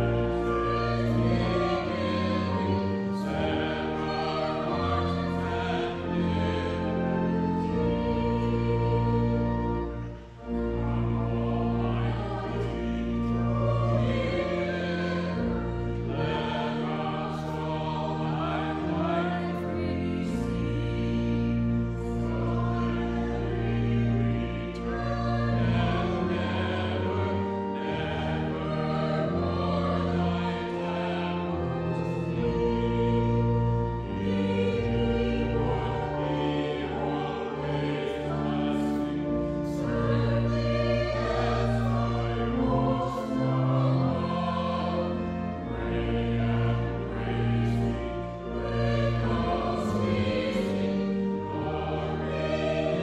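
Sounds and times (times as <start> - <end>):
organ sustained chords: 0.0 - 53.0
women singing a hymn: 0.0 - 53.0.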